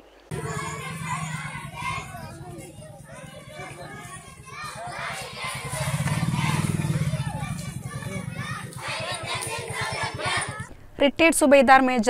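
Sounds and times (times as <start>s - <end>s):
children chattering and calling: 0.3s - 10.7s.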